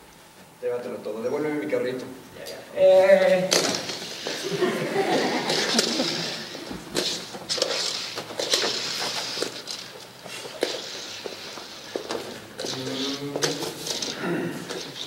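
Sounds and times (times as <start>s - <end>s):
footsteps on wooden stage: 5.6s - 15.0s
man moaning: 12.7s - 14.7s.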